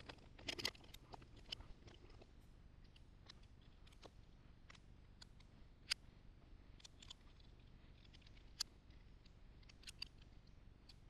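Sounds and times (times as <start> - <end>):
small metal parts clicking and rattling: 0.0 - 6.0, 6.7 - 11.0.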